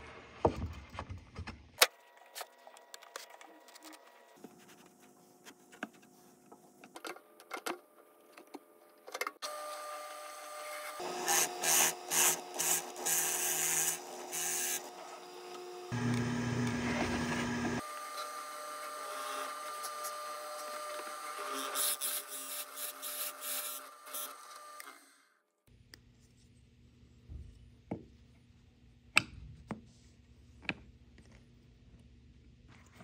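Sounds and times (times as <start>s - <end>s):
drill bit cutting wood: 9.4s - 25.2s
drill press motor whine: 9.4s - 25.4s.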